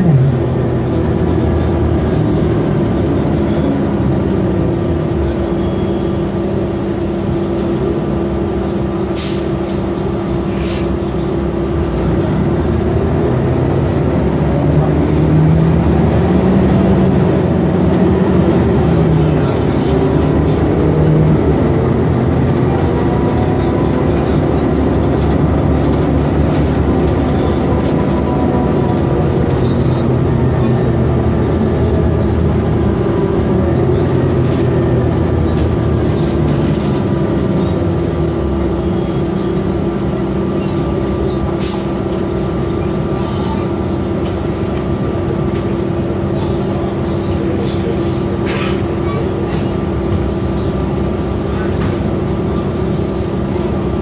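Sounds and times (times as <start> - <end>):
bus engine running: 0.0 - 54.0
short air hisses: 10.5 - 10.9.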